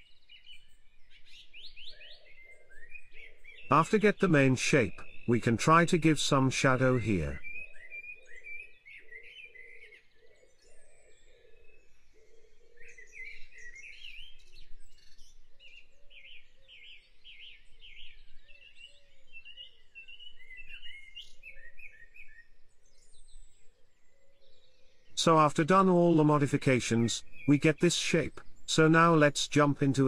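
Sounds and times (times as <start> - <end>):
birds singing and chirping: 0.0 - 30.0
rapid repeated bird notes: 3.2 - 8.7, 25.1 - 30.0.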